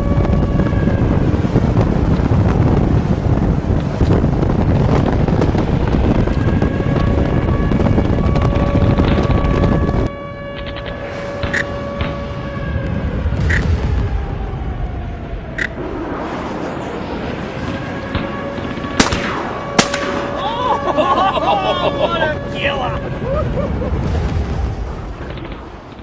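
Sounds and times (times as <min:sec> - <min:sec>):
shotgun shots: 0:19.0 - 0:20.4.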